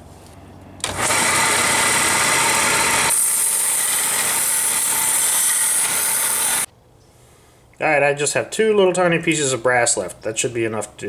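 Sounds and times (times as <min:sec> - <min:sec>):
belt sander sanding plastic: 0:00.8 - 0:06.7.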